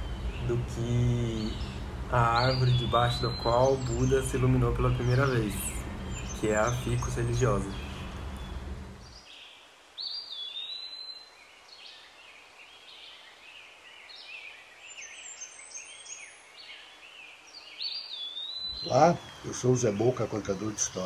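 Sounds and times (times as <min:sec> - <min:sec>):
bird whistled call: 0:01.4 - 0:08.1.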